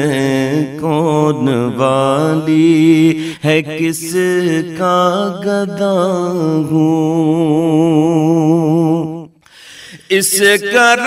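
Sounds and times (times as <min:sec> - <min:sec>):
man chanting melodically: 0:00.0 - 0:09.3, 0:10.0 - 0:11.0.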